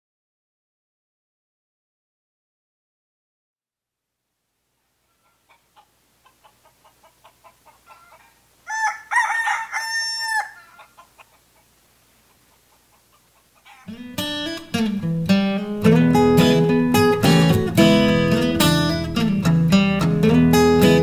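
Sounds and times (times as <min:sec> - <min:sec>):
rooster crowing: 0:05.0 - 0:11.7, 0:12.8 - 0:14.0
rooster clucking: 0:05.0 - 0:14.3.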